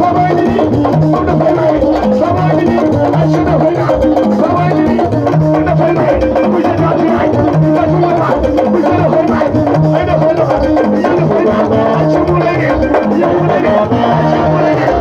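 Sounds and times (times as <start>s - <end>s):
live dance music: 0.0s - 15.0s
man singing into microphone: 0.0s - 15.0s.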